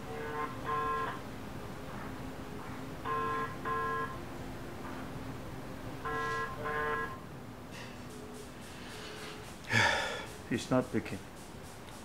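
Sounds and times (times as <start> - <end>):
telephone ringback tone: 0.1 - 1.2, 3.0 - 4.2, 6.0 - 7.2.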